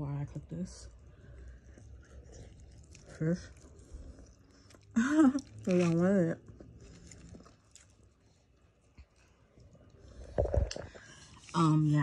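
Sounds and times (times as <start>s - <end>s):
fish being chewed: 0.9s - 12.0s.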